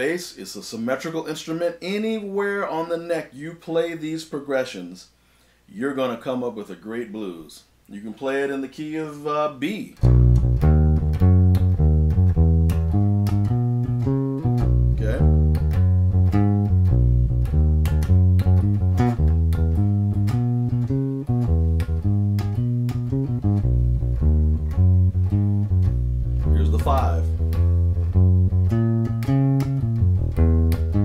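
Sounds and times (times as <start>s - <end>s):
electric bass blues line: 10.0s - 31.0s.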